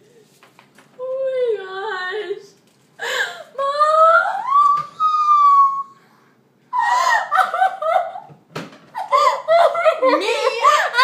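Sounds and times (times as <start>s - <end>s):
girl squealing wail: 3.6s - 5.9s
girl laughing: 6.7s - 8.3s, 8.9s - 11.0s.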